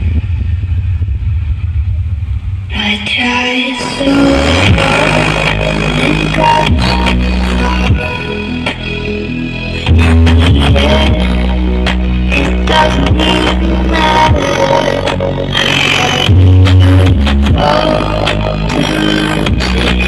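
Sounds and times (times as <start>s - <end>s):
deep bass notes: 0.0s - 20.0s
electronic dance music: 2.7s - 20.0s.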